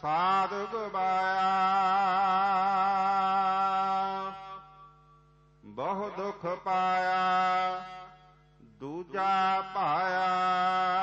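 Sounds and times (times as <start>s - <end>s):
person chanting melodic verse: 0.0s - 4.8s, 5.6s - 11.0s.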